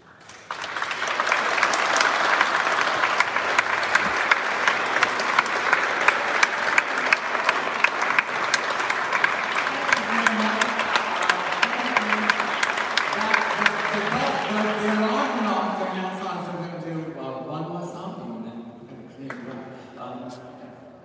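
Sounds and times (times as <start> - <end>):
audience applauding: 0.0 - 16.4.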